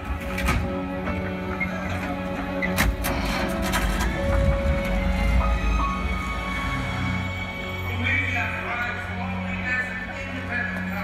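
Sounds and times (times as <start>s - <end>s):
film music over loudspeakers: 0.0s - 11.0s
low rumble: 2.9s - 7.6s.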